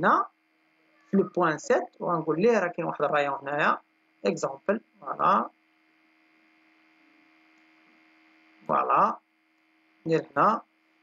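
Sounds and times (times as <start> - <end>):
faint electrical hum: 0.0 - 11.0
thin constant tones: 0.0 - 11.0.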